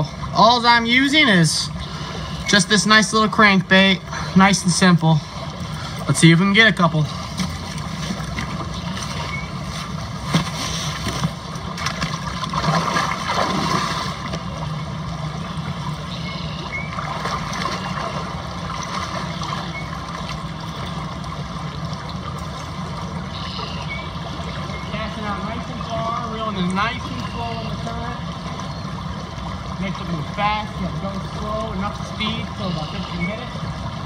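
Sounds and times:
river flowing: 0.0s - 34.0s.

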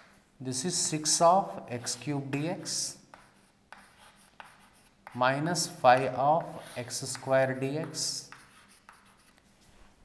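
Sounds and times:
chalk tapping: 1.0s - 9.6s
chalk scratching on blackboard: 1.0s - 10.0s.

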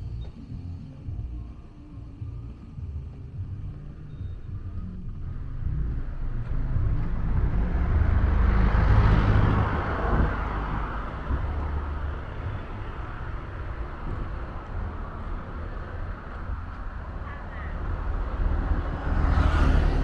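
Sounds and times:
vehicle passing close by: 4.6s - 20.0s.

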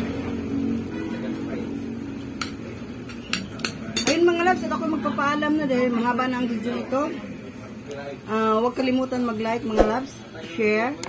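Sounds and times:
cutlery clinking against a dish: 2.4s - 4.4s
woman speaking: 9.5s - 10.2s.

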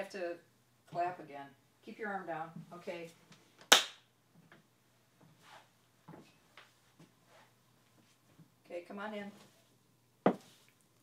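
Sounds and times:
sharp hand clap: 3.7s - 4.0s.

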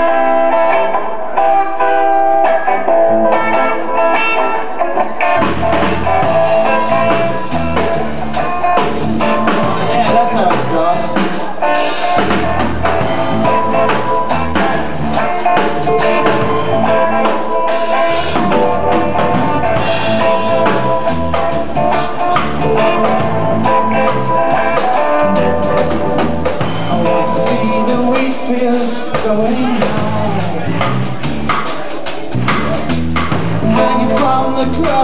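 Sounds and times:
reggae band playing: 0.0s - 35.0s
steady drum beat: 5.3s - 35.0s
pulsing bass line: 5.4s - 11.2s, 12.1s - 31.6s, 32.3s - 35.0s.

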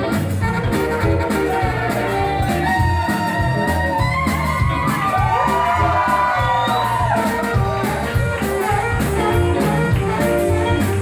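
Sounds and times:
drums: 0.0s - 11.0s
electric bass: 0.0s - 11.0s
electric guitar: 0.0s - 11.0s
saxophone: 0.0s - 11.0s.

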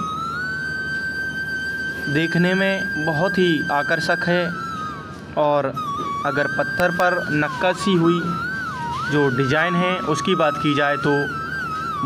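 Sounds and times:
high-pitched tone with overtones: 0.0s - 12.0s.

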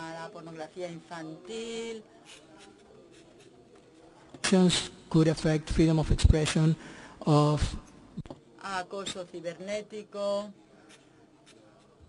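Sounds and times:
soft scratchy sounds: 0.6s - 4.3s, 10.6s - 12.0s.

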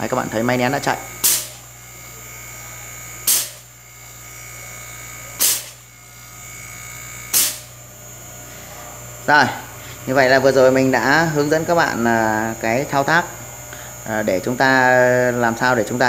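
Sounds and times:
compressor humming: 0.0s - 16.0s
short sharp hisses: 7.3s - 7.7s.

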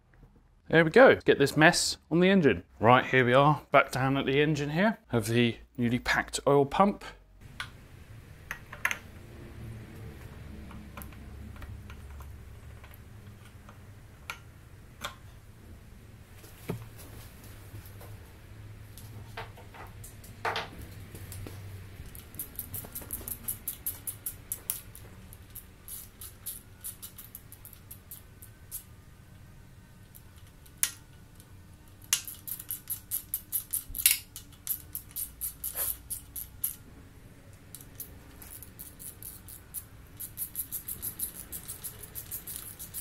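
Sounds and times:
hand ratchet clicking: 22.0s - 28.9s, 32.0s - 36.8s, 37.8s - 43.0s
sharp metallic clicks: 22.0s - 28.9s.

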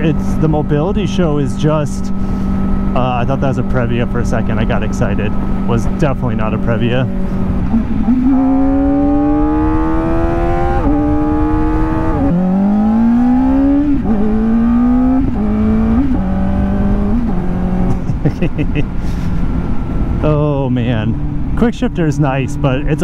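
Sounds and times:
motorcycle engine accelerating: 0.0s - 23.0s.

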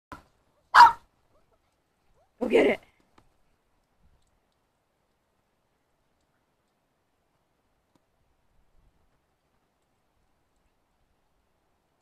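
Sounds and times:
dog barking: 0.7s - 1.0s.

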